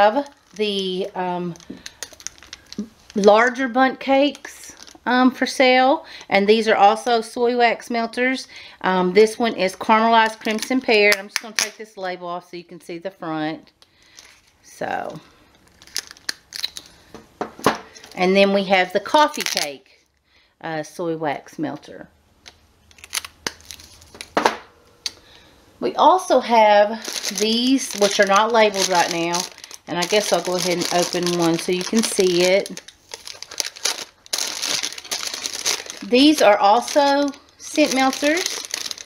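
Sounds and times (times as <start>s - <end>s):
plastic wrapping crinkling: 0.0s - 3.6s, 4.2s - 5.1s, 13.8s - 14.7s, 15.4s - 17.1s, 19.2s - 20.2s, 22.4s - 24.4s, 26.1s - 39.0s.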